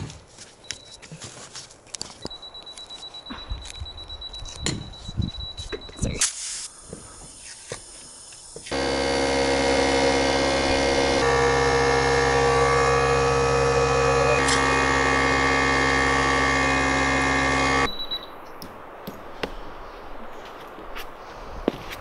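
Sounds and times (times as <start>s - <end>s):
air compressor running: 8.6s - 17.9s.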